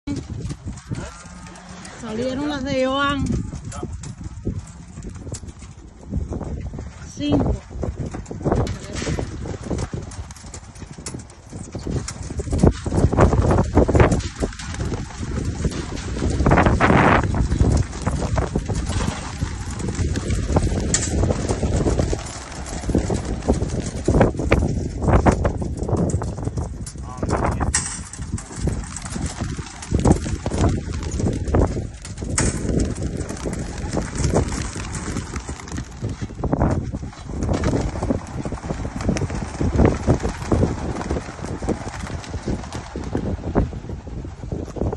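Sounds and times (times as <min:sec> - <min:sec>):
pigeon wings clattering: 0:00.0 - 0:44.9.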